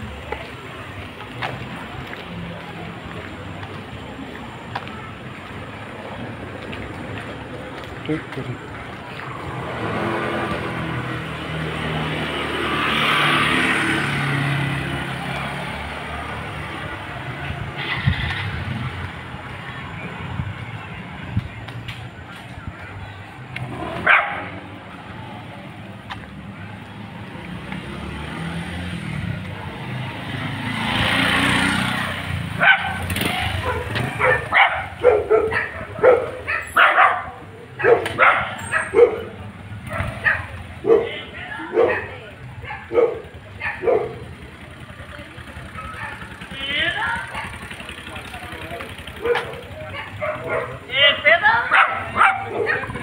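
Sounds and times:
motorbike passing: 0.0s - 53.0s
dog barking: 24.0s - 24.6s, 32.6s - 44.3s, 45.7s - 46.3s, 47.3s - 47.6s, 49.2s - 50.8s, 51.7s - 53.0s.

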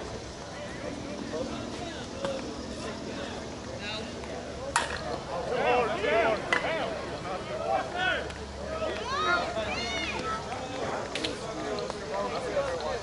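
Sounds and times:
players shouting: 4.7s - 11.1s.

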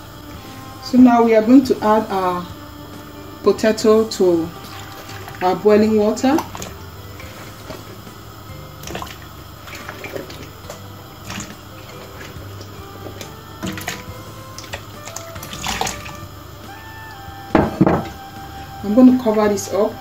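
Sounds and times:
boiling water: 0.0s - 20.0s.

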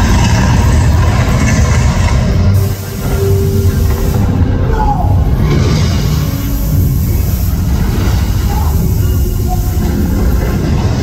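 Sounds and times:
deep loud rumbling effect: 0.0s - 11.0s
dramatic music over loudspeakers: 0.0s - 11.0s.

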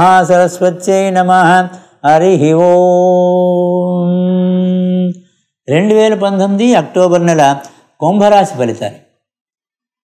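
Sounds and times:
man chanting: 0.0s - 9.0s.

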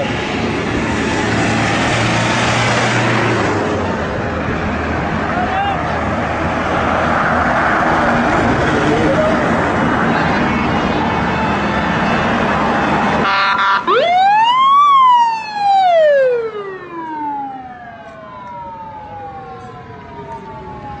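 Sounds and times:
road and wind noise: 0.0s - 21.0s
siren wailing: 10.3s - 21.0s
lower siren tone: 10.7s - 21.0s.

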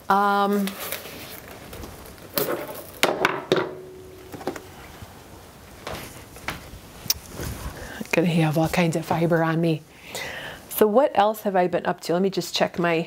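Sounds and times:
sharp handling knocks: 3.0s - 4.7s.

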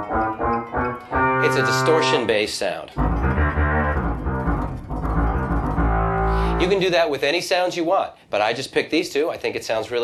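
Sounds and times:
distorted synth bass notes: 0.0s - 2.3s, 3.0s - 6.9s.

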